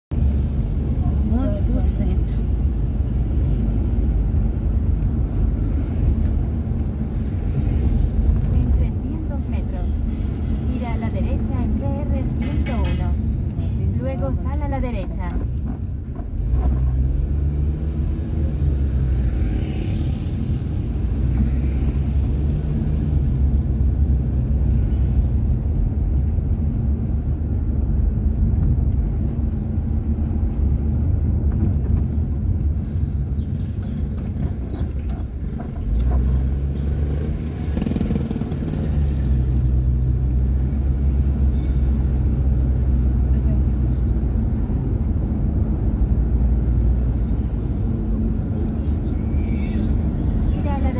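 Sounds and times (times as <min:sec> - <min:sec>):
car engine and tyre noise: 0:00.1 - 0:50.9.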